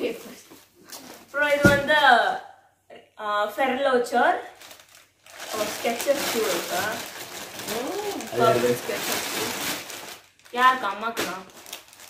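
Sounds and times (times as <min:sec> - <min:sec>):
plastic bag rustling: 0:04.5 - 0:12.0
girl humming: 0:07.7 - 0:08.8.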